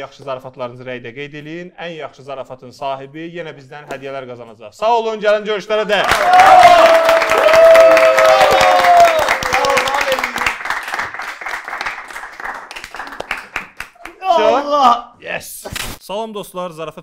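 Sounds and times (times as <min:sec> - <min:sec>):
voices cheering: 0:06.0 - 0:10.9
people clapping: 0:06.0 - 0:14.5.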